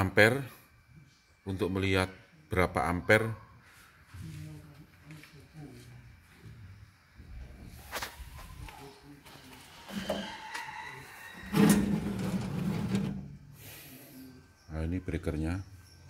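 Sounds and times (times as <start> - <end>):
metal door squeak: 9.8 - 13.4
metallic scraping clatter: 11.4 - 13.4.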